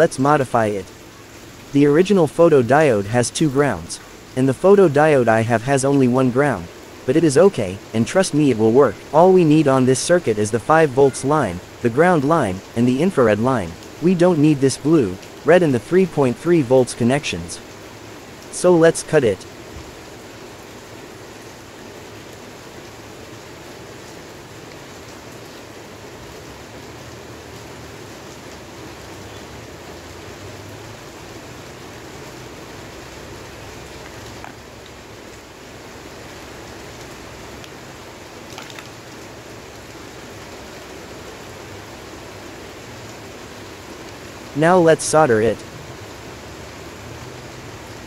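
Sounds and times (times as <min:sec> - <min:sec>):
steady background hiss: 0:00.0 - 0:48.0.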